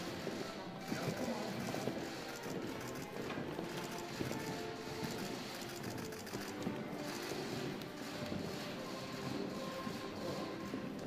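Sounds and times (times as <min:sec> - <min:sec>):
murmur of voices: 0:00.0 - 0:11.0
music: 0:00.0 - 0:11.0.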